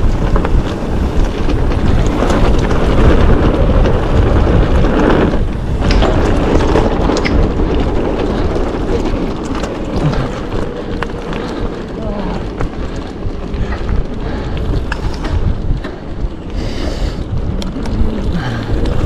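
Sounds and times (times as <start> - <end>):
bike rattling clicks: 0.0 - 19.0
tyres rumbling over dirt trail: 0.0 - 19.0
wind buffeting microphone: 0.0 - 19.0.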